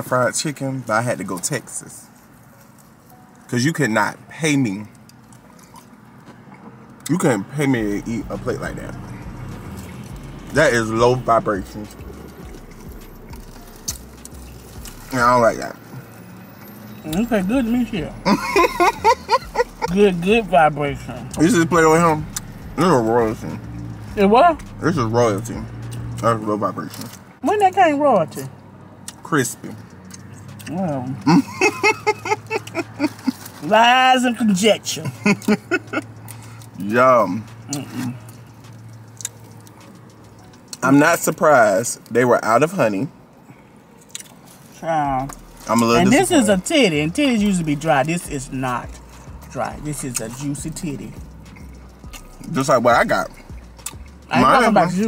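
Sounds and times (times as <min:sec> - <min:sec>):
chewing crispy food: 0:04.6 - 0:07.2, 0:07.9 - 0:16.0, 0:21.3 - 0:27.7, 0:29.0 - 0:33.7, 0:35.0 - 0:54.4
crispy fried chicken crackling: 0:37.4 - 0:42.1.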